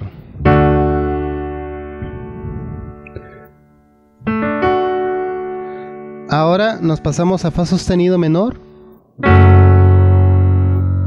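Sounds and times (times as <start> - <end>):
digital piano chord ringing: 0.0 - 11.0.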